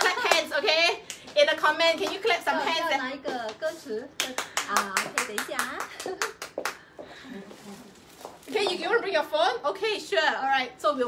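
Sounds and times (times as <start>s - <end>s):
hands clapping: 2.0s - 3.6s, 4.2s - 6.9s.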